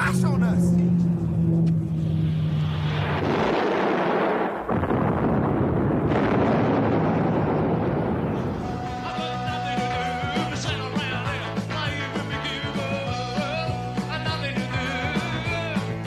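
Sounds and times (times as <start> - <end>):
aircraft engine drone: 0.0 - 16.0
loud crash and explosion: 2.7 - 9.8.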